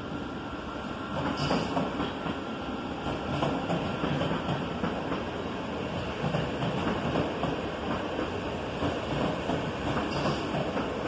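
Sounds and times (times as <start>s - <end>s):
train wheels rumbling on track: 0.0s - 11.0s.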